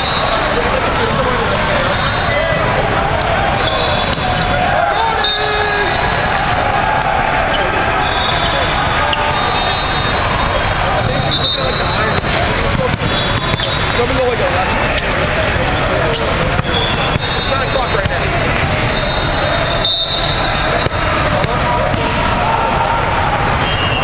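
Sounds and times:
referee whistles: 0.0 - 0.6, 1.8 - 2.6, 3.6 - 6.4, 7.5 - 14.2, 16.6 - 18.0, 18.8 - 21.2, 23.6 - 24.0
many people talking: 0.0 - 24.0
volleyball hits and bounces: 3.2 - 4.8, 11.8 - 19.0, 20.6 - 23.1.

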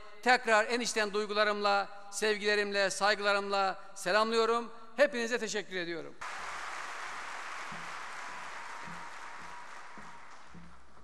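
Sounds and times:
audience applauding: 6.2 - 11.0.

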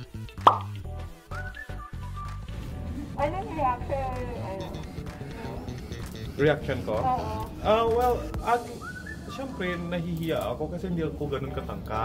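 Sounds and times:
upbeat background music: 0.0 - 12.0
cartoon plop sound effect: 0.5 - 0.8.

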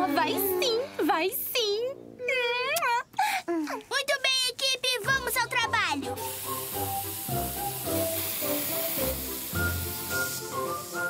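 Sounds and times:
background music: 0.0 - 2.8, 4.8 - 11.0
paint sprayers hissing: 6.1 - 11.0.

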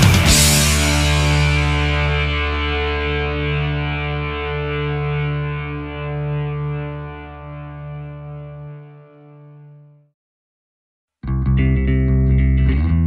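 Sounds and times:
distorted electric guitar chord: 0.0 - 10.0
low bass note: 0.0 - 10.0, 11.2 - 13.0.

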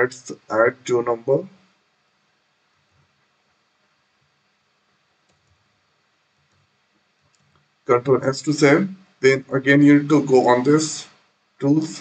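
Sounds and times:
man's voice: 0.0 - 1.5, 7.9 - 12.0
faint computer clicks: 5.2 - 5.6, 6.4 - 7.7.

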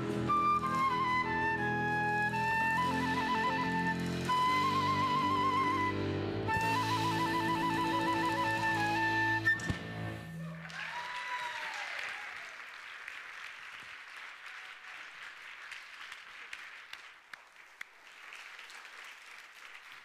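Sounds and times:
audience applauding: 0.0 - 9.6, 10.4 - 20.0
held musical note: 0.0 - 10.5.

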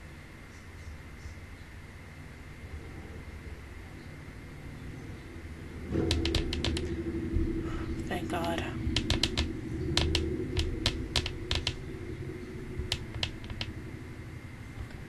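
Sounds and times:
steady low hum: 0.0 - 15.0
sharp irregular clicks: 5.9 - 7.0, 8.0 - 12.1, 12.8 - 13.9.

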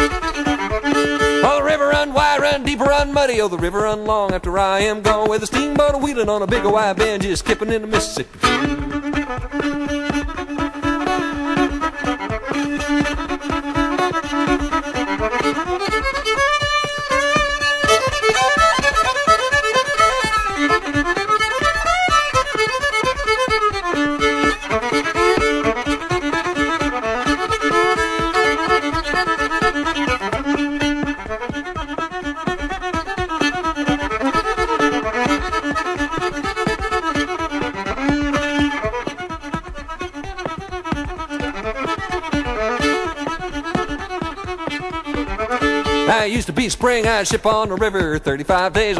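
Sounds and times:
fiddle playing sliding notes: 0.0 - 48.9
steady beat: 0.0 - 48.9.

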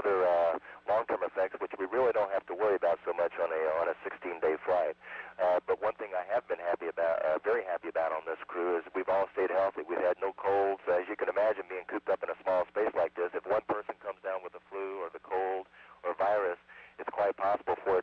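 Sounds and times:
faint steady hum: 0.0 - 18.0
man speaking over radio: 0.0 - 18.0.

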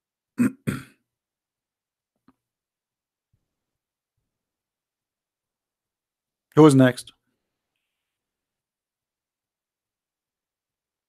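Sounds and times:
man clearing his throat: 0.4 - 1.1.

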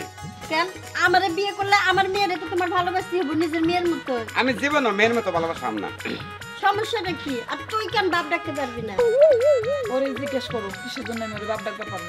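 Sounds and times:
music with repeating bass line: 0.0 - 12.0.

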